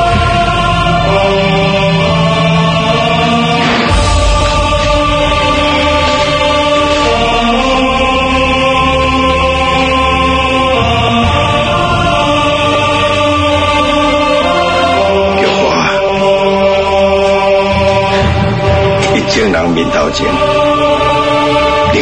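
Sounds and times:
music of long held chords: 0.0s - 22.0s.

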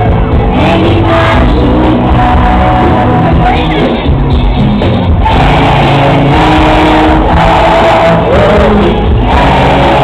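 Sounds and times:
live pop band music: 0.0s - 10.0s.

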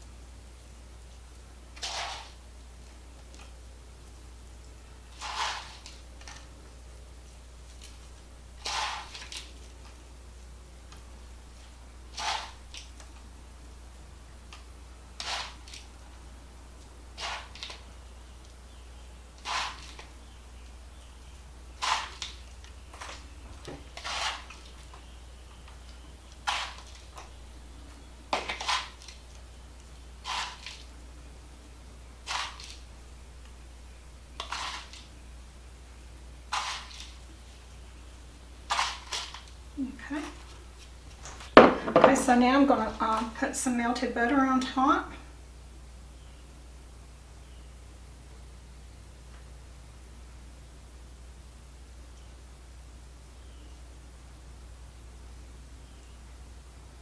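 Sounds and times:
low steady hum: 0.0s - 57.0s
cracker crumbs sprinkled by hand: 1.1s - 4.2s, 5.1s - 10.1s, 19.4s - 20.2s, 21.7s - 27.4s, 28.3s - 30.9s, 32.2s - 32.9s, 34.4s - 35.2s, 36.5s - 37.5s.

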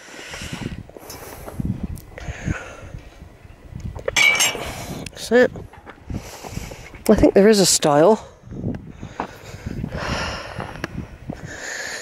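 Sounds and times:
metal gate swung shut: 4.2s - 4.6s.

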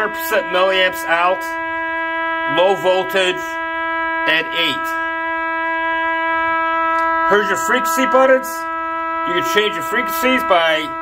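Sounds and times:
transmitter buzzy tone: 0.0s - 11.0s.

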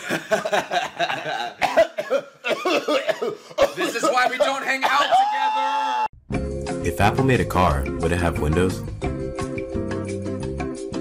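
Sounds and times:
coughing: 0.0s - 5.6s
men laughing: 0.0s - 6.0s.

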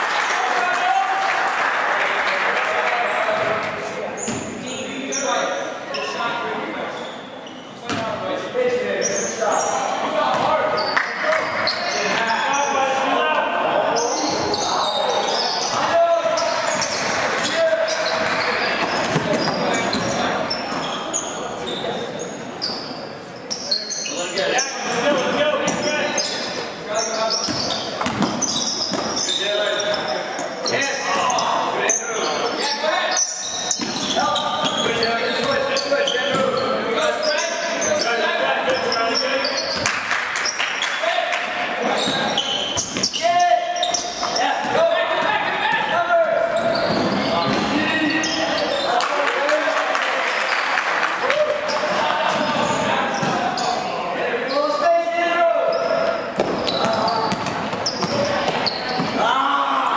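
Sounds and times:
voices calling out: 2.3s - 59.9s.

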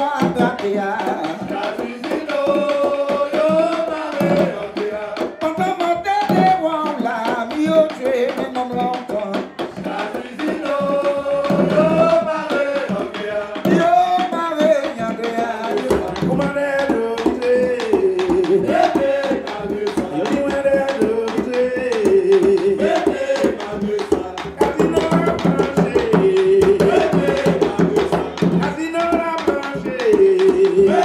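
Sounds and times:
hand drums beating: 0.0s - 31.0s
person singing: 0.0s - 31.0s.

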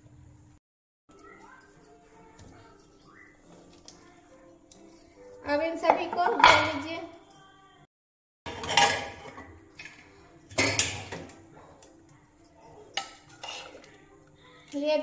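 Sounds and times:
metal pots and lids clanking: 5.5s - 7.1s, 8.5s - 12.0s, 12.6s - 14.0s.

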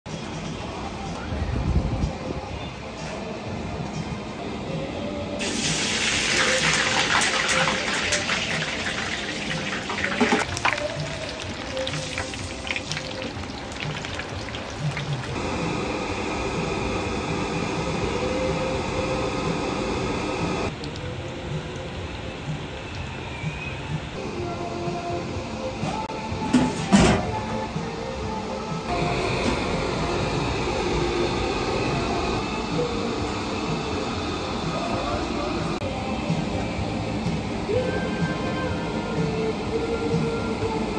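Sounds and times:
background music: 0.1s - 40.9s
frying oil bubbling and sizzling: 5.4s - 15.4s, 20.7s - 24.2s.

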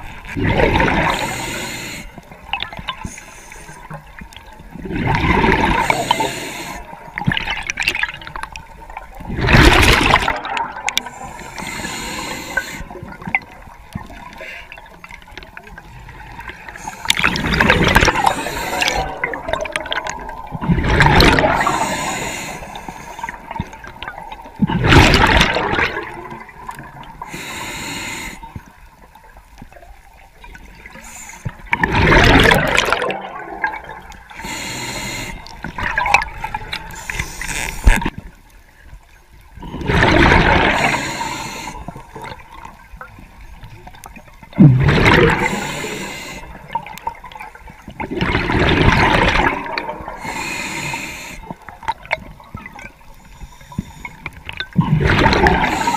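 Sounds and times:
exhaled air bubbles underwater: 0.0s - 3.0s, 4.3s - 27.3s, 31.5s - 34.5s, 35.3s - 37.0s, 39.6s - 43.1s, 43.8s - 50.5s, 54.3s - 55.9s
faint breathing hiss: 1.0s - 2.4s, 3.0s - 4.2s, 5.7s - 7.2s, 11.0s - 13.2s, 16.4s - 19.3s, 21.5s - 23.6s, 27.1s - 28.8s, 30.8s - 31.7s, 34.3s - 35.7s, 36.7s - 38.0s, 40.6s - 42.2s, 45.3s - 46.8s, 50.1s - 51.9s, 53.1s - 54.5s, 55.6s - 55.9s.

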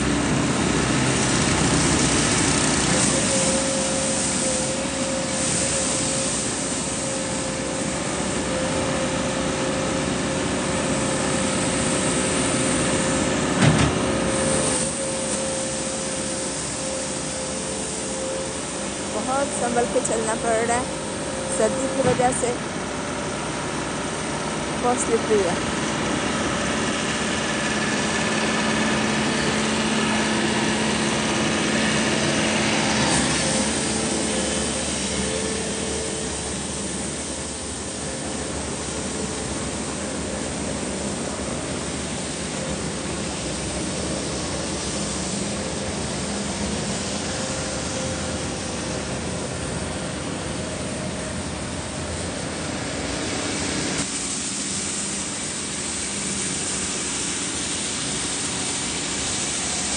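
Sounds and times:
vehicle engine humming: 0.0s - 56.4s
steady outdoor noise: 0.0s - 59.9s.

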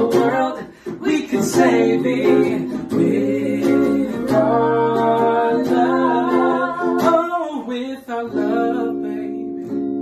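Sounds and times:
guitar accompaniment: 0.0s - 10.0s
man and woman singing in harmony: 0.0s - 10.0s.

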